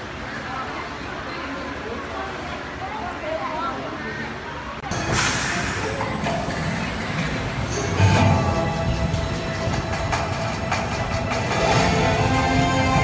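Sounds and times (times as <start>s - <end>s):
roller coaster rumbling on track: 0.0s - 13.0s.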